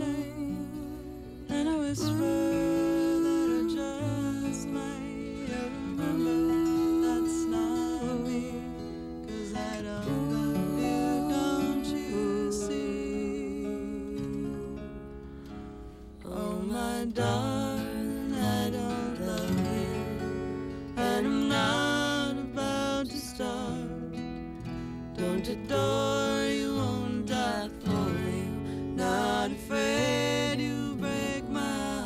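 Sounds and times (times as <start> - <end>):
woman singing: 0.0 - 15.4, 16.2 - 32.0
acoustic guitar strummed and picked: 0.0 - 32.0.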